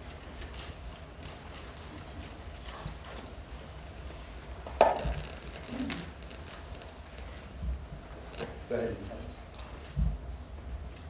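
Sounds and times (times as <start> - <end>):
microphone handling rustling: 4.6 - 8.7.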